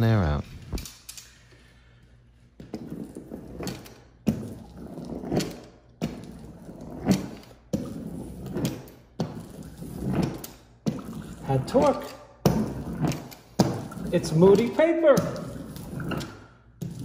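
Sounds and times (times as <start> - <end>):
seam roller rolling on wallcovering: 2.6 - 17.0.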